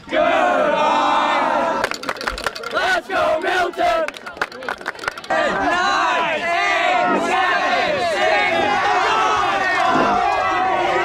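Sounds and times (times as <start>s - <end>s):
crowd yelling and cheering: 0.0s - 11.0s
sharp claps: 1.8s - 5.4s.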